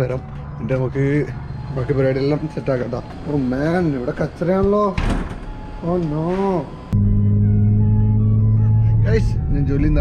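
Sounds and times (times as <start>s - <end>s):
glass door pushed open: 5.0s - 5.5s.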